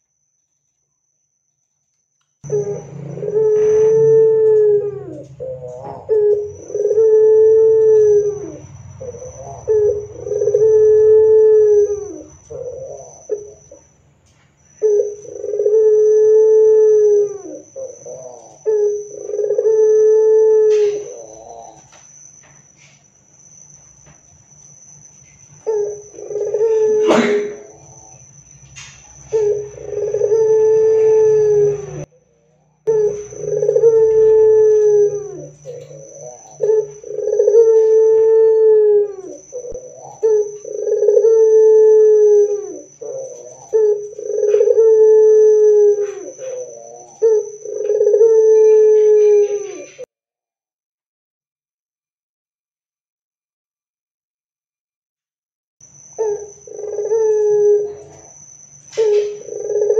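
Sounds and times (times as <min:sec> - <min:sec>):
faint high whine: 0:00.0 - 0:50.1
dove cooing: 0:02.4 - 0:22.0, 0:25.6 - 0:32.1, 0:32.8 - 0:50.1, 0:56.1 - 0:59.9.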